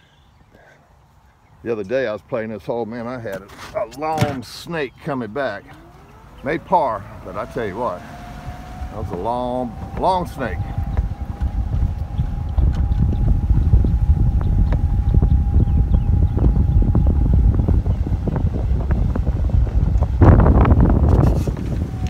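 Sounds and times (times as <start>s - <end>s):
golf cart rumbling: 3.4s - 22.0s
wind buffeting microphone: 4.0s - 22.0s.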